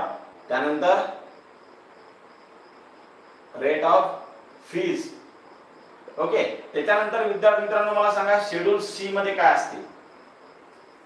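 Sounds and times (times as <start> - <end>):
insect chirring: 0.0 - 11.0.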